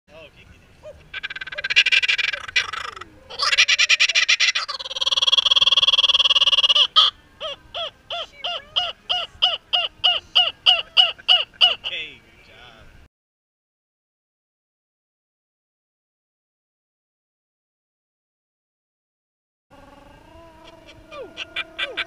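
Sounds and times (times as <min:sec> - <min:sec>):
kookaburra laughing call: 0:00.8 - 0:12.0, 0:19.8 - 0:22.0.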